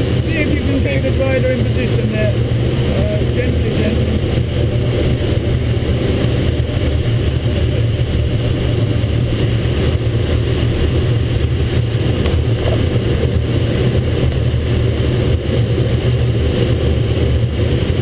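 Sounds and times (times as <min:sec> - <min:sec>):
wind rushing in glider cockpit: 0:00.0 - 0:18.0.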